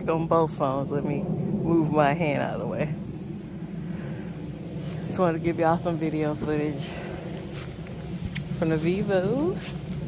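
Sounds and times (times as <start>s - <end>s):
low mechanical drone: 0.0s - 10.0s
outdoor background noise: 0.0s - 10.0s.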